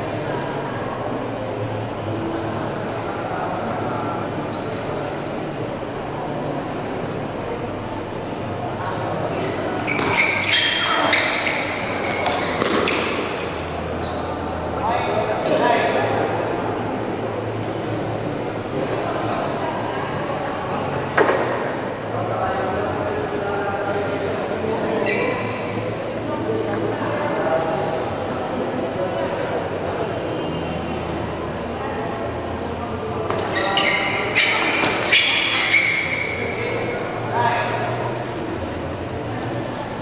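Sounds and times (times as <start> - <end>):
voices: 0.0 - 40.0.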